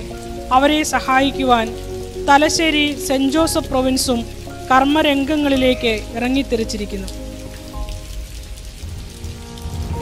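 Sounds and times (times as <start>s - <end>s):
rain-like hiss: 0.0s - 10.0s
soft music of held notes: 0.0s - 10.0s.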